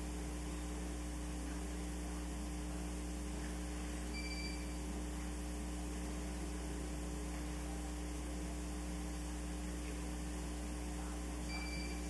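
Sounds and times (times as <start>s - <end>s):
electrical mains hum: 0.0s - 12.0s
high electronic beep: 4.1s - 4.8s, 11.4s - 12.0s.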